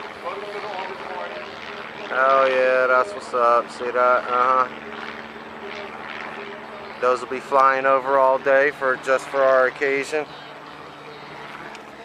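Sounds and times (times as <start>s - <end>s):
distant propeller plane drone: 0.0s - 12.0s.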